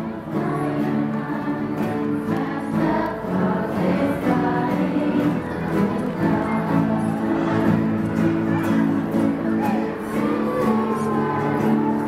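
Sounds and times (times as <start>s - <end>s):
acoustic guitars playing: 0.0s - 12.0s
group of voices singing: 0.0s - 12.0s.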